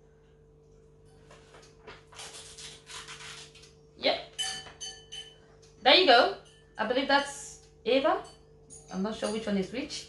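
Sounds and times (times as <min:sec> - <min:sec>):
icing sheet peeled from plastic film: 0:02.1 - 0:03.7.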